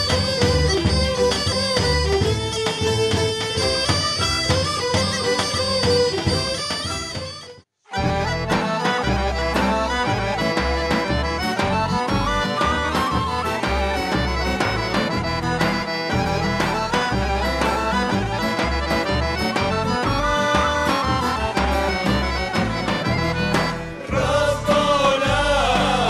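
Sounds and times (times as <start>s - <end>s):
accordion folk music: 0.0s - 26.0s
bass and drum beat: 8.0s - 26.0s
group of voices singing: 24.0s - 26.0s.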